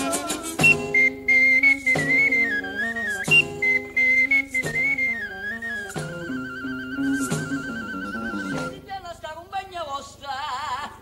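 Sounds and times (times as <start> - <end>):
whistle-like wind instrument melody: 0.0 - 8.8
band accompaniment: 6.0 - 8.8.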